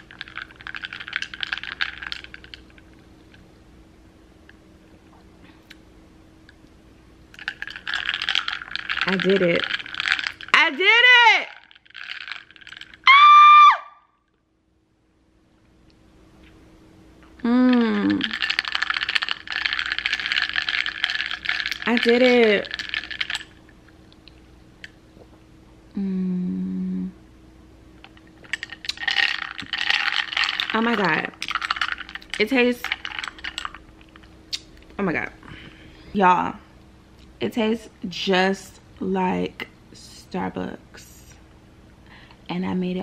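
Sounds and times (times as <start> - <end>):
woman squealing: 13.0 - 14.1.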